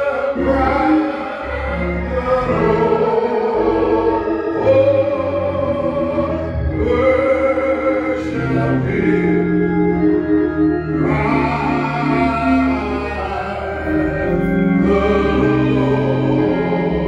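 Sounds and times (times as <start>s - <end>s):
bass notes: 0.0s - 17.0s
keyboard chords: 0.0s - 17.0s
person singing gospel song: 0.0s - 17.0s.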